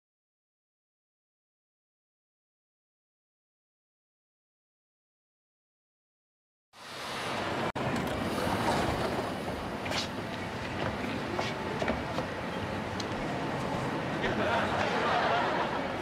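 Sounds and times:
subway train rumble and rattle: 6.9 - 16.0.

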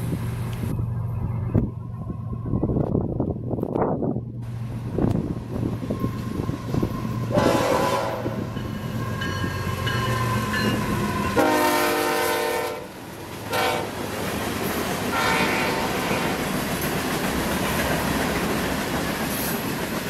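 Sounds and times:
rumble of passing locomotives: 0.0 - 20.0
clickety-clack of freight cars: 2.8 - 20.0
locomotive horn blasts: 7.2 - 8.5, 10.6 - 14.0, 15.1 - 16.3.

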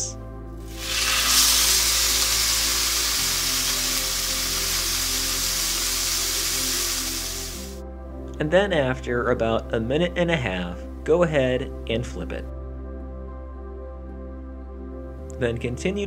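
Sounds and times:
soft background music: 0.0 - 16.0
meat sizzling in a skillet: 0.7 - 7.8.

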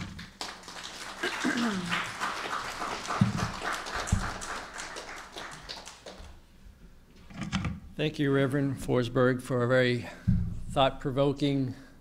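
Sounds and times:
audience applauding: 0.0 - 6.5
throat clearing: 1.2 - 2.0.

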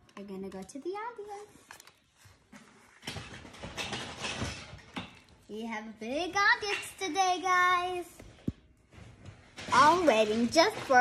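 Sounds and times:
rustling handling noise: 6.5 - 11.0.

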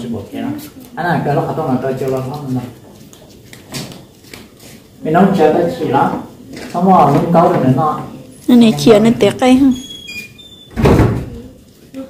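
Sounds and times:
thump: 10.7 - 11.4.

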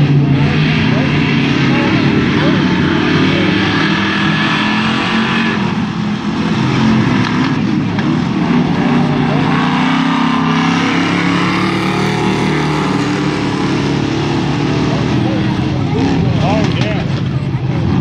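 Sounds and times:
race car engines: 0.0 - 18.0.

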